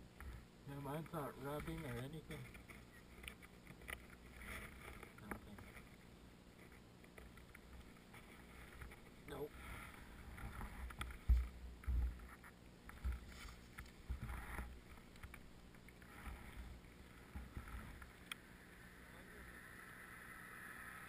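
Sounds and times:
rustling on microphone: 0.2 - 18.3
low thumps on microphone: 10.5 - 12.3.

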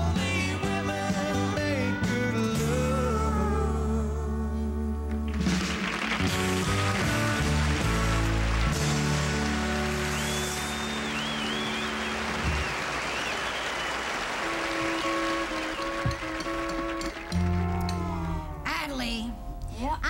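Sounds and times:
country band playing: 0.0 - 19.7
audience applause: 5.3 - 18.5
whistle from crowd: 9.9 - 17.4.

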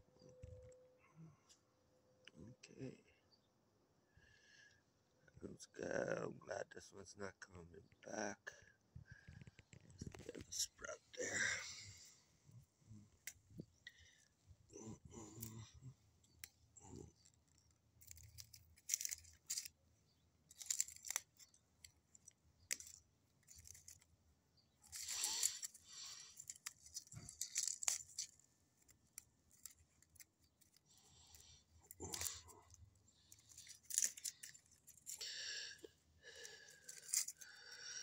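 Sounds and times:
dry leaves rustling and crackling: 24.9 - 28.4.

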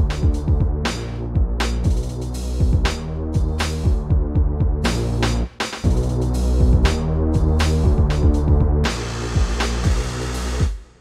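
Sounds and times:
deep kick drums: 0.0 - 5.2, 5.8 - 8.8, 9.4 - 10.8
low synth notes: 0.0 - 10.7.

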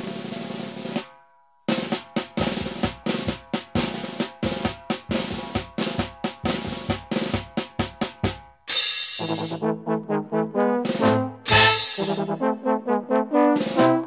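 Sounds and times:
band music with drums: 0.0 - 1.1, 1.7 - 9.6, 10.8 - 12.4, 13.6 - 14.0
drum roll: 0.0 - 9.7, 10.8 - 12.4, 13.5 - 14.0
snare and bass drum beat: 1.7 - 9.6, 10.8 - 12.4, 13.6 - 14.0.

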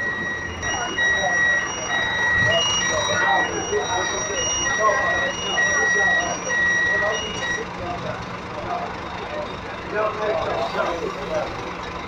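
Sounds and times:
electronic beeping tone: 0.0 - 7.7
bus engine idling: 0.0 - 12.0
people talking nearby: 0.0 - 12.0.

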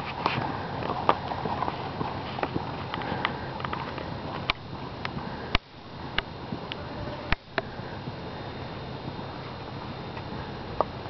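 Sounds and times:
horse hooves walking on dirt: 0.0 - 11.0.

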